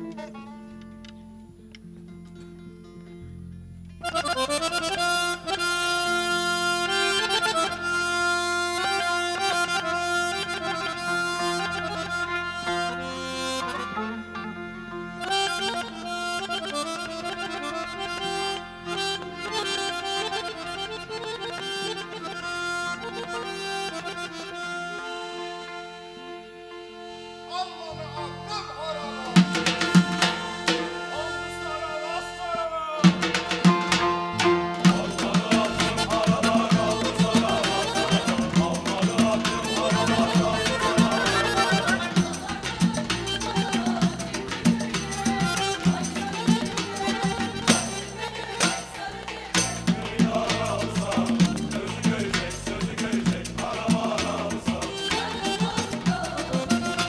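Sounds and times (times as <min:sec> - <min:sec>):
accordion melody: 0:00.0 - 0:03.2, 0:03.8 - 0:57.0.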